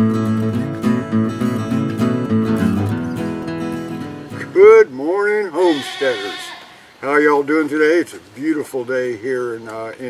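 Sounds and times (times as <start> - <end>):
strummed guitar music: 0.0 - 4.9
farm animal bleating: 5.3 - 7.3.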